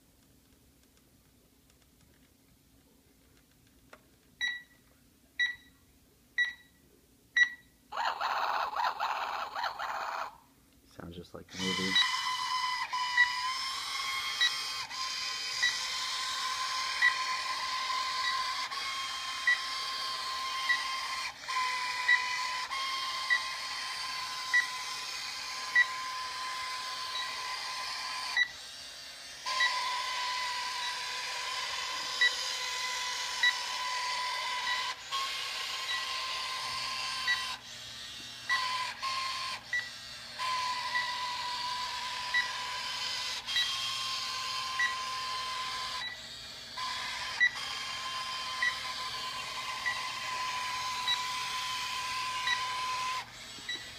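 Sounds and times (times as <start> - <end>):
short electronic beeps: 4.4 - 4.8.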